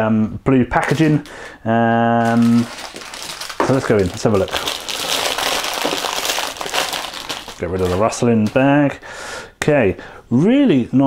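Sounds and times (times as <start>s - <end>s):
plastic bag crinkling: 0.8s - 1.4s, 2.1s - 8.9s.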